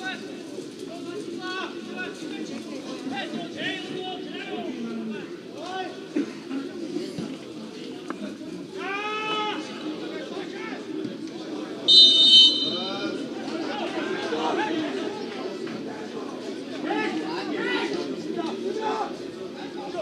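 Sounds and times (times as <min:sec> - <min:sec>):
players and spectators shouting: 0:08.6 - 0:11.0, 0:11.8 - 0:20.0
referee's whistle blast: 0:11.9 - 0:13.0.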